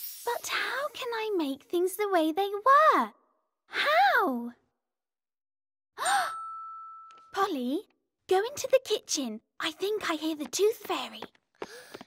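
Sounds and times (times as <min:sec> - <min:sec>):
cartoon girl sighing: 0:06.0 - 0:06.5.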